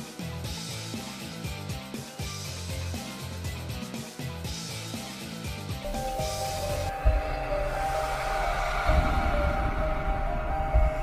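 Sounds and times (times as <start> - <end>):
dramatic music with held notes: 5.8 - 11.0.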